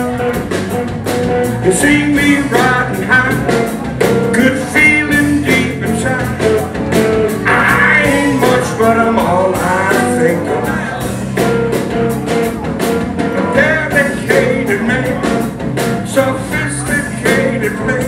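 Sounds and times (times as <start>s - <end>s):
drums keeping a steady beat: 0.0s - 18.0s
electric bass: 0.0s - 18.0s
electric guitar: 0.0s - 18.0s
male vocal singing: 1.6s - 6.7s, 7.4s - 11.1s, 13.5s - 18.0s.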